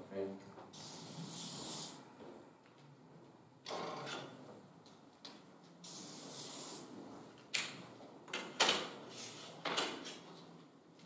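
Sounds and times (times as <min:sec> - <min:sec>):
marker pen scratching on paper: 0:00.8 - 0:02.0, 0:05.9 - 0:06.9.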